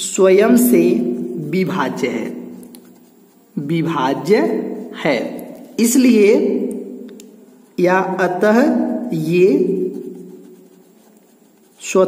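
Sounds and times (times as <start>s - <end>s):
pen scratching on paper: 0.4s - 12.0s.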